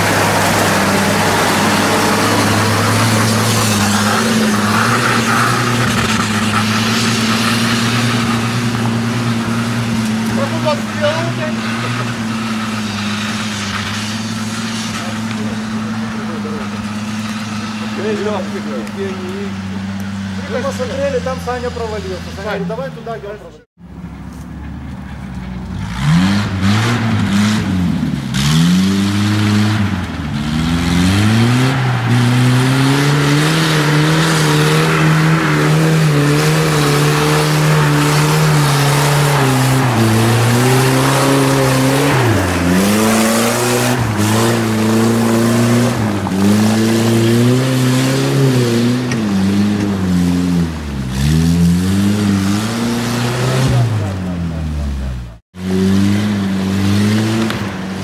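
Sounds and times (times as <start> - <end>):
engine revving hard: 0.0 - 19.6, 25.8 - 58.0
wheels churning through mud: 0.0 - 22.9, 25.0 - 58.0.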